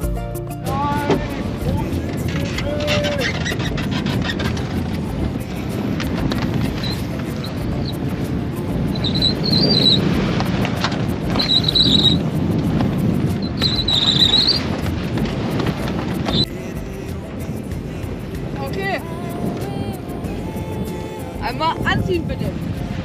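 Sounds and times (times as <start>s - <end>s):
short high squeaks: 2.1s - 4.8s, 6.8s - 8.0s, 8.9s - 12.3s, 13.4s - 14.9s.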